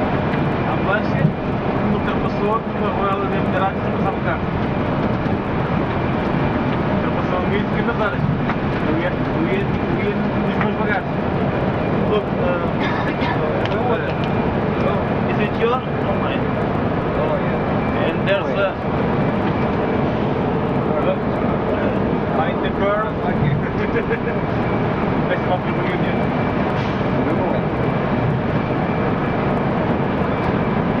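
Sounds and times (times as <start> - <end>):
bus engine and road noise: 0.0 - 31.0
people talking: 0.6 - 4.6, 7.0 - 11.2, 11.9 - 18.9, 20.8 - 24.5, 25.2 - 26.3, 27.1 - 27.7.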